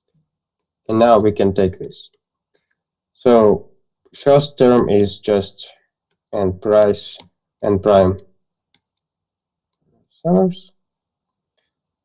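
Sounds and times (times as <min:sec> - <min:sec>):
man speaking: 0:00.8 - 0:02.2, 0:03.1 - 0:08.3, 0:10.1 - 0:10.8
faint clicks: 0:08.5 - 0:09.1.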